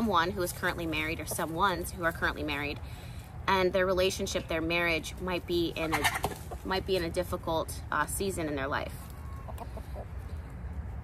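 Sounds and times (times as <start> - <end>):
chickens clucking: 5.7 - 7.0, 9.0 - 10.5.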